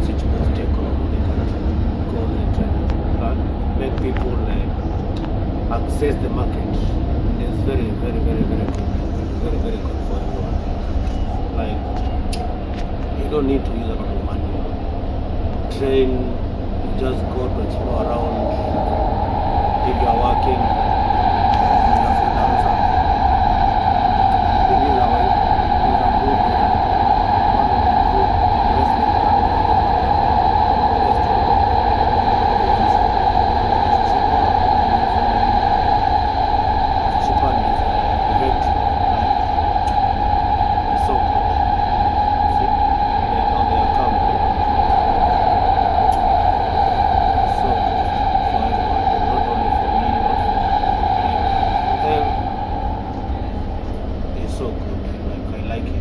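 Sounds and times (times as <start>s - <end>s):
electric train whine: 0.0s - 56.0s
wheels rumbling on rails: 0.0s - 56.0s.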